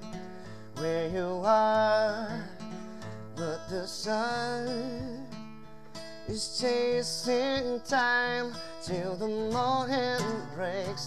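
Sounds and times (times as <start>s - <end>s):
man singing a slow ballad: 0.0s - 5.5s, 6.2s - 11.0s
acoustic guitar: 0.0s - 11.0s.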